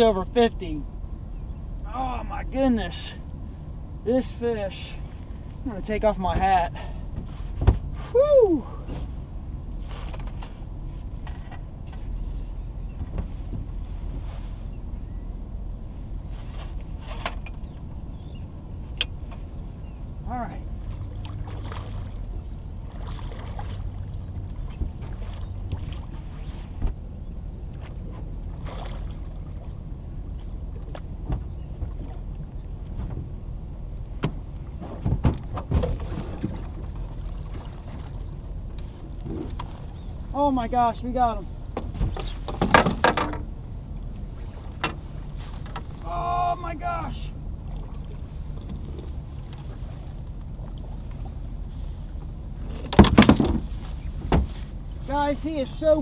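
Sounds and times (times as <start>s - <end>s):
water noise around boat: 0.0s - 56.0s
wind: 0.0s - 56.0s
fish splashing: 22.9s - 24.1s
knocks on boat: 35.0s - 36.7s, 52.8s - 53.7s.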